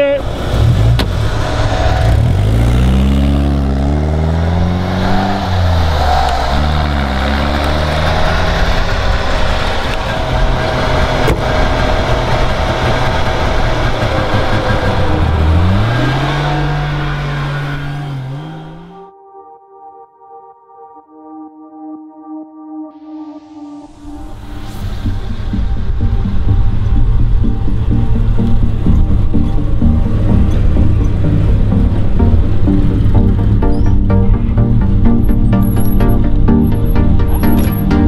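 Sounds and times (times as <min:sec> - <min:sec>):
car engine revving and accelerating: 0:00.0 - 0:19.1, 0:24.2 - 0:38.0.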